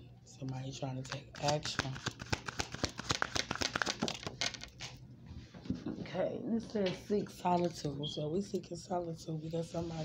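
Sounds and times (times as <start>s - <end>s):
cards being shuffled: 1.1s - 5.0s.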